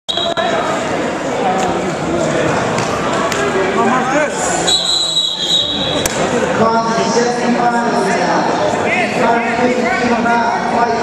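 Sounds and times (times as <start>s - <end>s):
referee's whistle: 0.1s - 0.5s, 4.7s - 6.1s.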